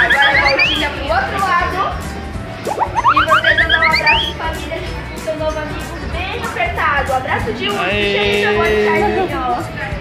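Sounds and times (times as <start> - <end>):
cartoon rising whistle: 0.0 - 0.9, 2.7 - 4.3
background music: 0.0 - 10.0.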